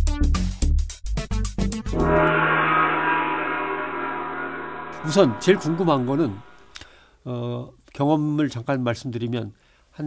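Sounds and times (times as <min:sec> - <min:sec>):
long ringing tone: 0:01.8 - 0:06.8.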